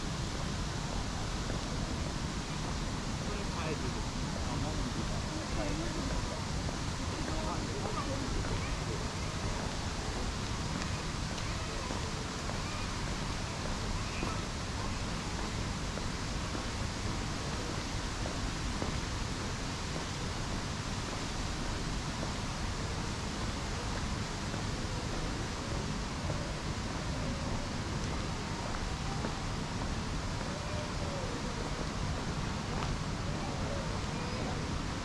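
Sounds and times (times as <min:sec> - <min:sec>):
even hiss: 0:00.0 - 0:35.0
wind rumble on microphone: 0:00.0 - 0:35.0.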